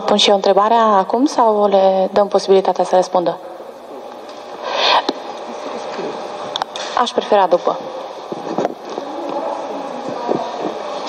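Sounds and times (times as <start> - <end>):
hall room noise: 0.0 - 11.0
faint voices murmuring: 3.6 - 11.0.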